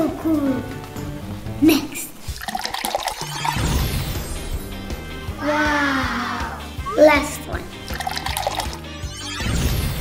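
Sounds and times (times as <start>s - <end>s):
background music: 0.0s - 10.0s
water gushing and pouring: 2.2s - 4.3s, 7.8s - 8.9s.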